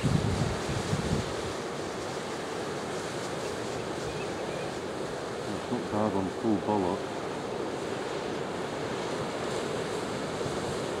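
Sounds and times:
waves washing on rocky shore: 0.0 - 11.0.

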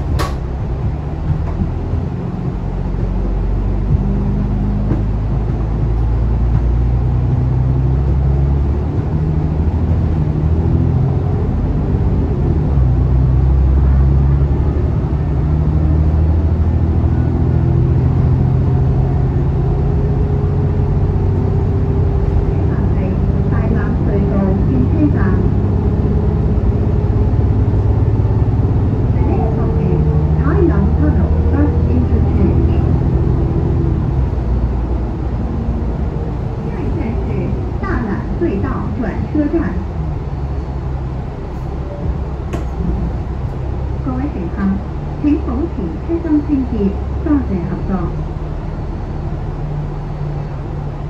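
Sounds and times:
bus engine hum: 0.0 - 51.0
road noise: 0.0 - 51.0.

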